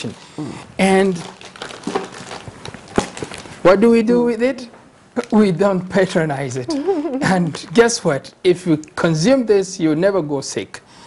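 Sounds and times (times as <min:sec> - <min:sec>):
plastic packaging crinkling: 0:00.0 - 0:03.8, 0:06.7 - 0:08.0.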